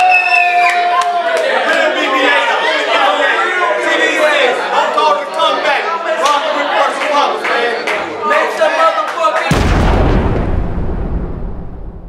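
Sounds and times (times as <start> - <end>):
crowd voices: 1.0 - 9.7
deep boom sound effect: 9.5 - 12.0.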